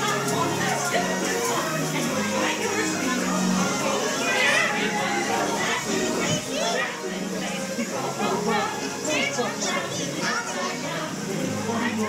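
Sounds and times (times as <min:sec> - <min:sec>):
high-pitched character voices chattering: 0:00.0 - 0:12.0.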